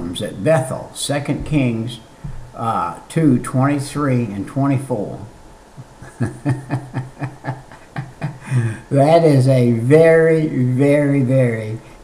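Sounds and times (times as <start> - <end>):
elderly man chuckling: 5.8 - 8.9.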